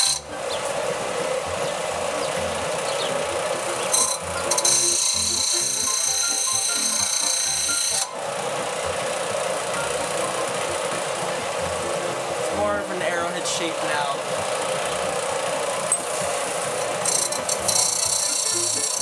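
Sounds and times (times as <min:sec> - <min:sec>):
background music with bass line: 0:00.0 - 0:19.0
belt sander grinding metal: 0:00.0 - 0:19.0.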